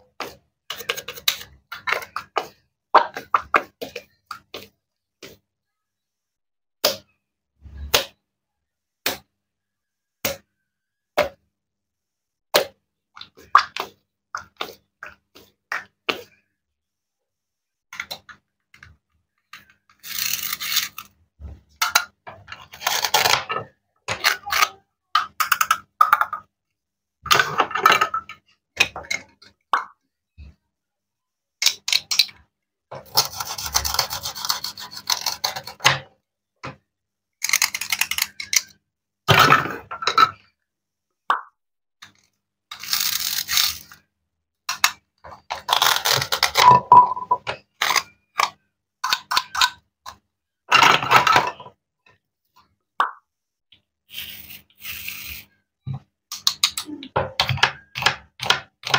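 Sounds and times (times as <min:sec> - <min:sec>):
toy pieces clicking and clattering: 0:19.5 - 0:21.2, 0:21.8 - 0:23.5, 0:24.2 - 0:26.5, 0:37.4 - 0:38.8, 0:42.1 - 0:44.0, 0:44.7 - 0:51.6.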